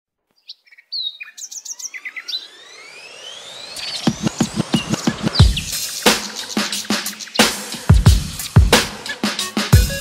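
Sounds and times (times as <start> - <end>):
birds chirping: 0.3 - 10.0
rising synth tone: 1.4 - 6.6.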